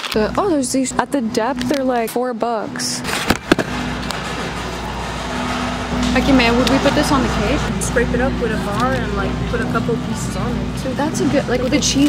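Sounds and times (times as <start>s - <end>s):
store background hum and hiss: 2.8s - 12.0s.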